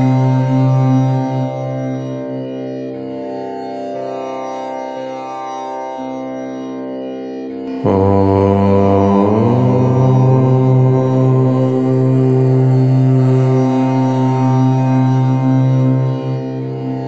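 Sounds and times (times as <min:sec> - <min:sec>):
low voice chanting om: 0:00.0 - 0:02.0, 0:07.8 - 0:17.0
steady background drone: 0:07.7 - 0:17.0.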